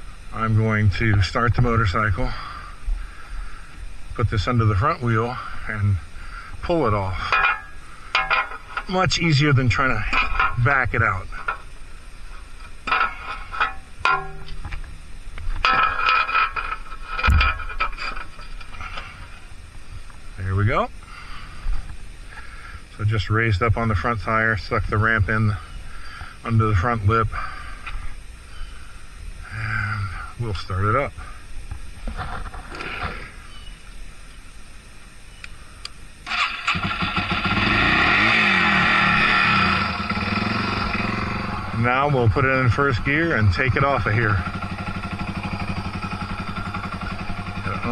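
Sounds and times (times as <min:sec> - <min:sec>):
metal ramp clanking: 0:07.2 - 0:09.2, 0:12.8 - 0:14.7, 0:15.6 - 0:19.2
dirt bike engine running: 0:36.3 - 0:47.9.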